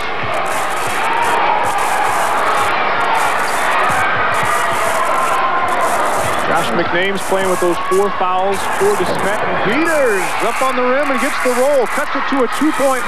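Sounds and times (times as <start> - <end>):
crowd cheering and shouting: 0.0 - 13.0
basketball bouncing: 2.4 - 6.6.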